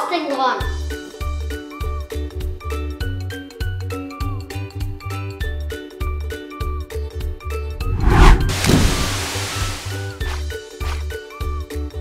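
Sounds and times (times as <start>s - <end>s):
whoosh sound effect: 7.8s - 9.8s.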